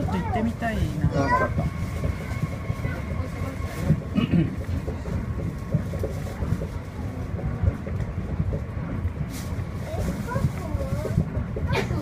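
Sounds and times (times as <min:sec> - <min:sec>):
monorail car rumbling: 0:00.0 - 0:12.0.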